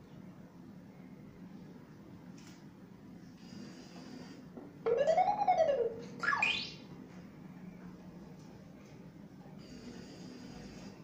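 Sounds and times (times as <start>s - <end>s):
electronic rising and falling tone: 4.9s - 6.9s
electronic upward sweep: 4.9s - 6.9s.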